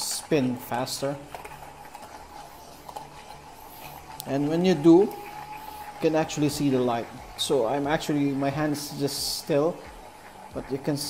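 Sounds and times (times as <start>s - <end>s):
gyroscope rotor whirring: 0.0s - 11.0s.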